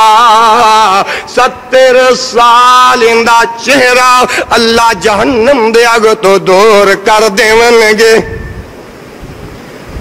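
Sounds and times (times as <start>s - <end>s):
man preaching through microphones: 0.0s - 8.5s
low rumble and hiss: 0.0s - 10.0s.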